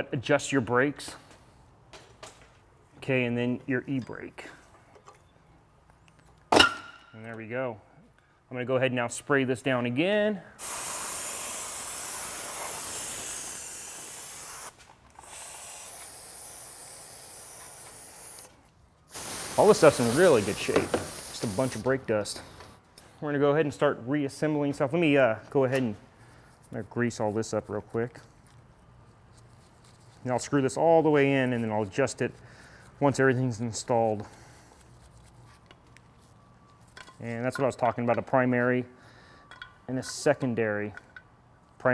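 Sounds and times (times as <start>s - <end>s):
aerosol spray hissing: 10.6s - 22.8s.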